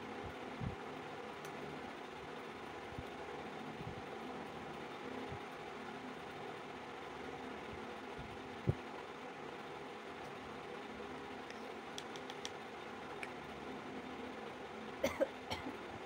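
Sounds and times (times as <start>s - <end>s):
faint background hum: 0.0s - 16.0s.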